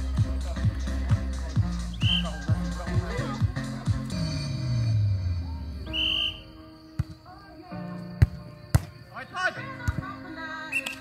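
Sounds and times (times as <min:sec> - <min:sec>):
background music: 0:00.0 - 0:11.0
referee's whistle blast: 0:02.0 - 0:02.3, 0:05.8 - 0:06.6.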